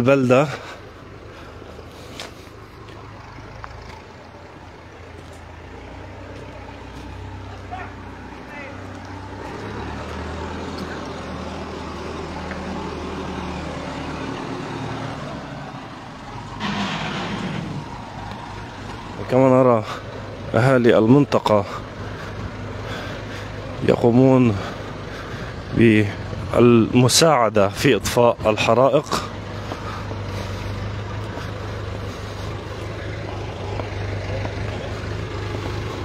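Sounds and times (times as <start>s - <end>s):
tractor engine running: 0.0s - 36.0s.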